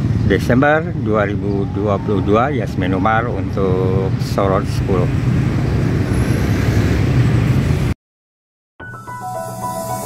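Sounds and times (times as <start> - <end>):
road traffic rumble: 0.0 - 8.0.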